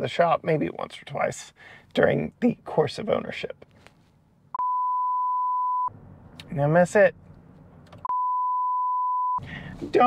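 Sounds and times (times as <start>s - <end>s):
person speaking: 2.0s - 3.6s
high censor bleep tone: 4.6s - 5.9s, 8.0s - 9.4s.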